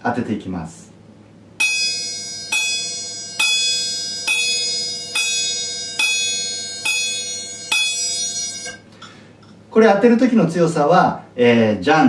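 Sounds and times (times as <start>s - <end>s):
small hand cymbals struck: 1.6s - 8.9s.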